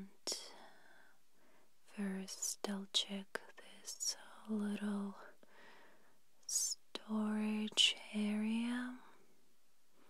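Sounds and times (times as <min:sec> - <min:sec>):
faint soft breath: 0:00.3 - 0:01.9, 0:05.1 - 0:06.2.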